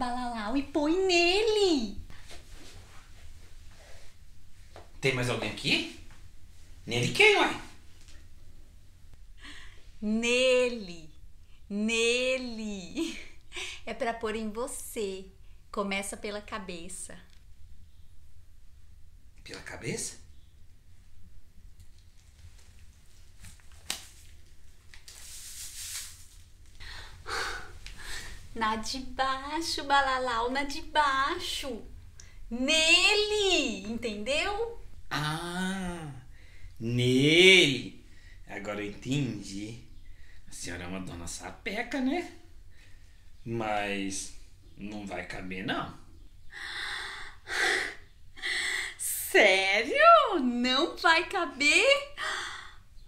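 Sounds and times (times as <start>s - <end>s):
rubbery rustling of condom: 21.8s - 26.8s
hissy rustle: 22.0s - 28.6s.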